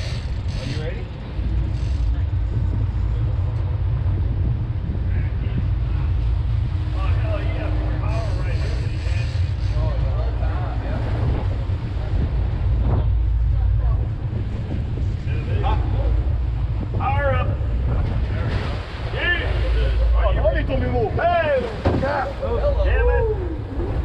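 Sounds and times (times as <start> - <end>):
boat engine rumble: 0.0 - 24.0
people talking indistinctly: 0.0 - 24.0
wind buffeting microphone: 0.0 - 24.0.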